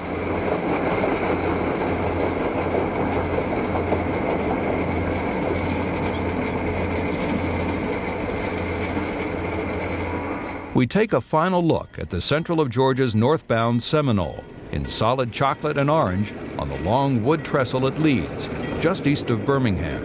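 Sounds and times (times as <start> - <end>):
train wheels on rail: 0.0 - 10.8, 13.6 - 20.0.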